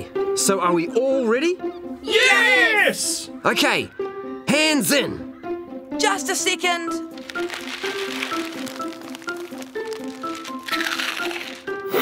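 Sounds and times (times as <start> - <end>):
background music: 0.0 - 12.0
plastic packet crinkling: 7.1 - 11.8.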